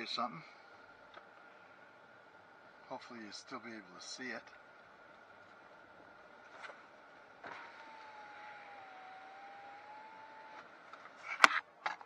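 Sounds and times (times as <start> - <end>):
vehicle cabin noise: 6.5 - 12.0
electric window motor whine: 7.4 - 11.0.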